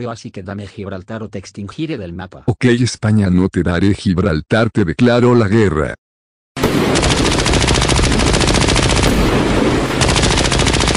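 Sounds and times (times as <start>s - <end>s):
rapid machine-gun fire: 6.6s - 10.9s.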